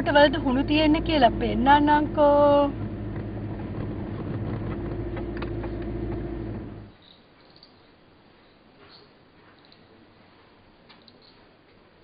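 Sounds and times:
vehicle engine humming: 0.0s - 6.9s.

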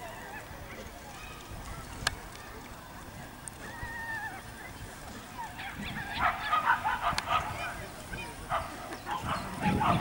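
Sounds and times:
dogs yipping and barking: 3.7s - 10.0s.

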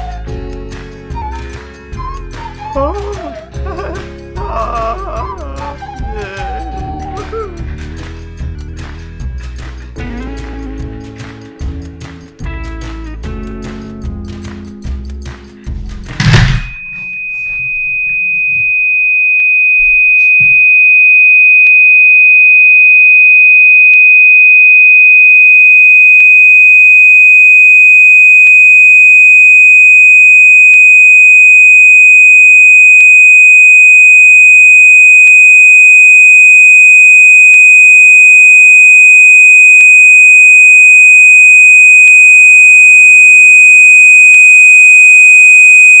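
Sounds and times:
loud thump: 16.1s - 16.8s
high-pitched sine tone: 16.2s - 46.0s.

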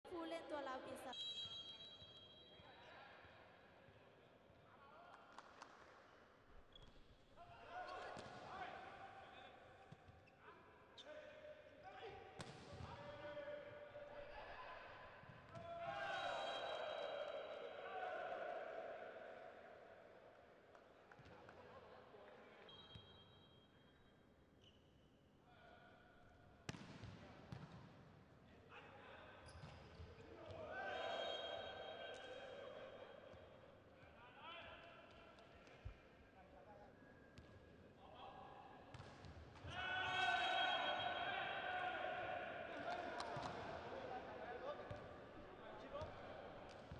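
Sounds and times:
voices in large hall: 0.0s - 24.1s, 25.0s - 46.9s
volleyball bouncing on court floor: 12.4s - 13.0s, 26.7s - 28.0s, 38.9s - 39.8s, 43.0s - 43.7s
people shouting and calling out: 39.6s - 43.3s.

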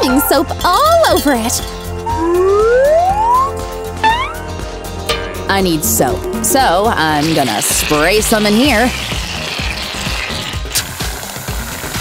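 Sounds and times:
background music with steady beat: 0.0s - 8.3s
aerosol can spraying hiss: 7.2s - 12.0s.

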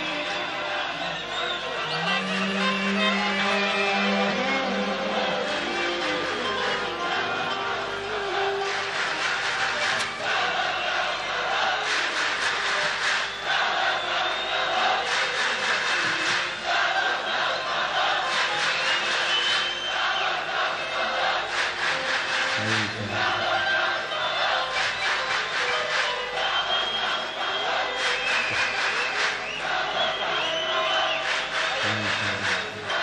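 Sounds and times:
live orchestral music: 0.0s - 10.4s
crowd cheering and shouting: 0.0s - 33.0s.

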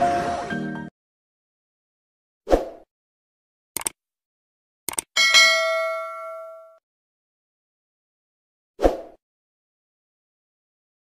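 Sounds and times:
double mouse click: 3.8s - 4.0s, 4.9s - 5.1s
bell ding: 5.2s - 6.8s.

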